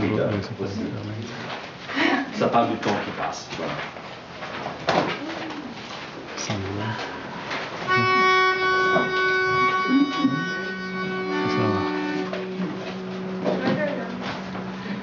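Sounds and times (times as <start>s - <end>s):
singers humming: 7.9s - 13.6s
pitch pipe note: 7.9s - 15.0s.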